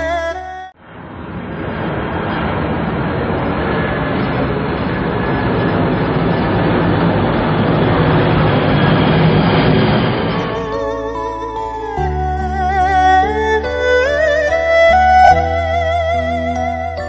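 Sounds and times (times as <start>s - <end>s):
jet engines passing overhead: 0.8s - 10.9s.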